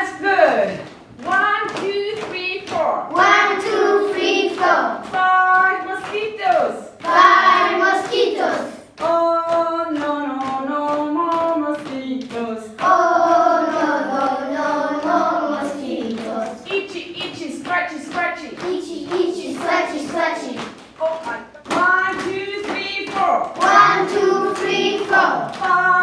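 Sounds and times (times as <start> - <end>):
hand claps: 0.8 - 26.0
children and woman chanting: 1.2 - 26.0.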